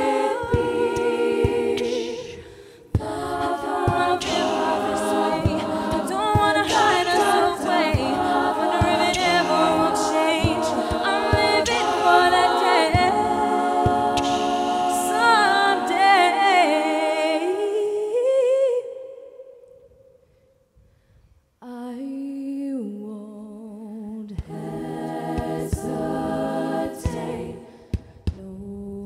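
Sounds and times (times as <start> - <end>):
women singing in close harmony: 0.0 - 19.6, 21.8 - 29.0
beatboxed low thumps: 0.4 - 15.4, 26.9 - 28.8.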